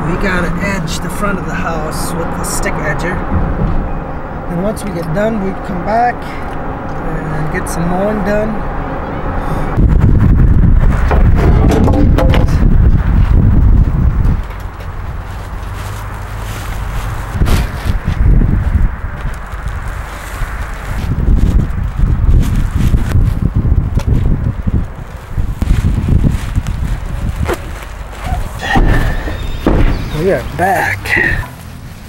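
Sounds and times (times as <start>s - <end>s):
wind buffeting microphone: 0.0s - 31.4s
bags thudding and rustling: 26.1s - 30.3s.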